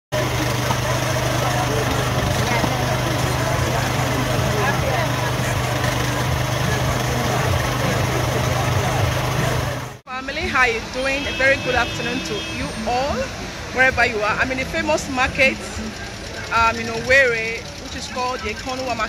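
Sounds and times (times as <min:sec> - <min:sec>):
steady engine hum: 0:00.1 - 0:19.0
many voices talking: 0:00.2 - 0:19.0.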